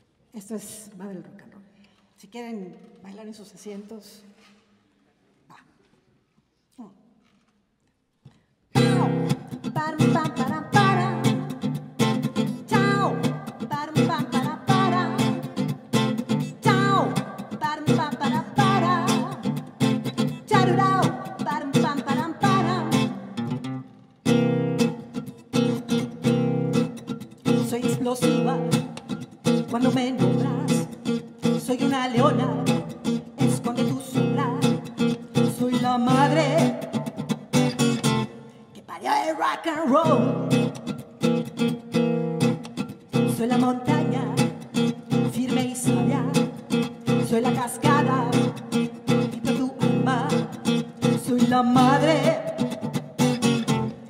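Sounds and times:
acoustic guitar strumming: 0:08.7 - 0:38.6, 0:40.0 - 0:54.0.

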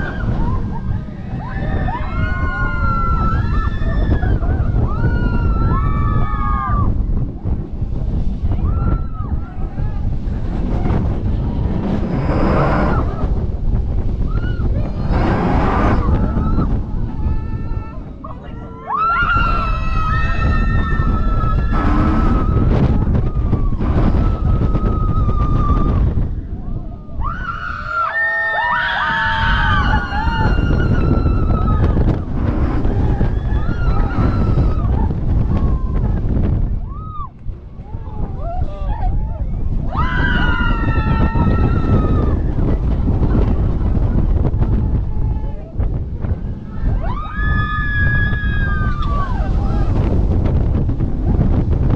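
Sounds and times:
riders screaming and whooping: 0:00.0 - 0:51.9
roller coaster running: 0:00.0 - 0:51.9
wind rushing over microphone: 0:00.0 - 0:51.9.

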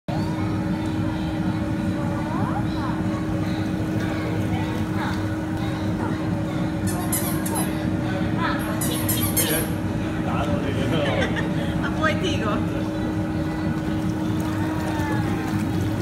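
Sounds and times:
pump motor hum: 0:00.1 - 0:16.0.

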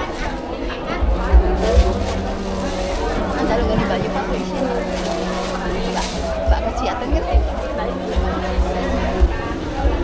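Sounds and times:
market voices: 0:00.0 - 0:10.0
low thumps: 0:01.0 - 0:10.0.

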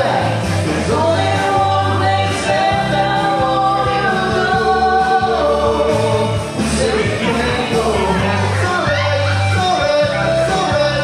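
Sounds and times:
woman singing karaoke: 0:00.0 - 0:10.2
man singing karaoke: 0:00.0 - 0:11.0
recorded backing track: 0:00.0 - 0:11.0.

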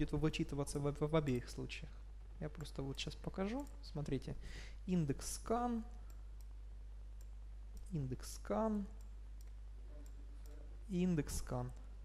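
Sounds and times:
steady low hum: 0:00.0 - 0:12.0
computer mouse clicks: 0:02.5 - 0:04.2, 0:07.2 - 0:07.9, 0:09.0 - 0:10.6.

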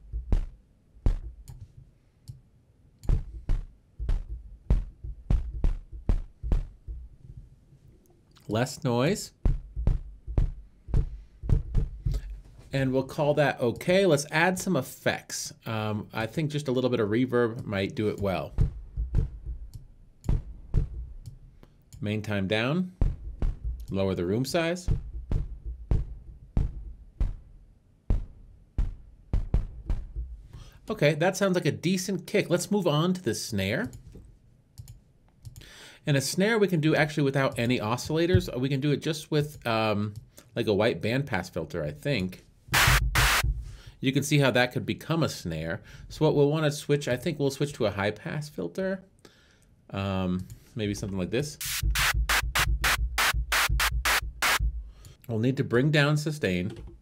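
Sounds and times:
synthesized kick drum: 0:00.0 - 0:01.5, 0:03.0 - 0:07.2, 0:09.3 - 0:12.4, 0:18.4 - 0:21.4, 0:23.0 - 0:24.0, 0:24.8 - 0:30.6, 0:42.7 - 0:43.8, 0:51.6 - 0:55.0
synthesized snare hits: 0:42.7 - 0:43.7, 0:51.6 - 0:55.0.

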